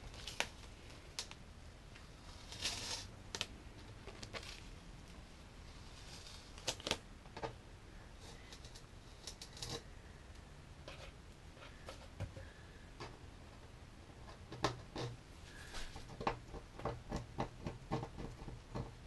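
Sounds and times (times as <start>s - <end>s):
tape peeling crackles and clicks: 0.0s - 1.4s, 6.3s - 7.0s.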